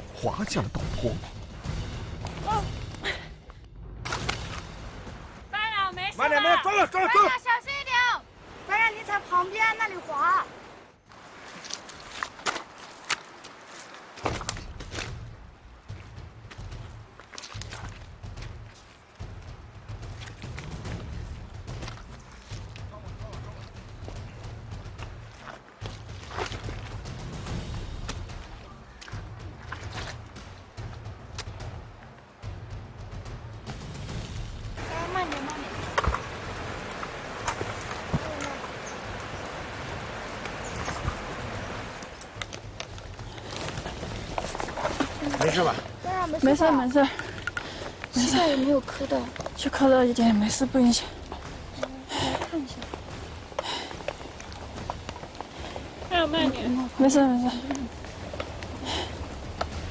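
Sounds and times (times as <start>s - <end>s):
undergrowth rustling: 7.0s - 59.9s
boots scraping on muddy slope: 11.1s - 15.3s, 15.9s - 31.8s, 34.8s - 59.9s
rustling and scraping: 40.4s - 48.3s.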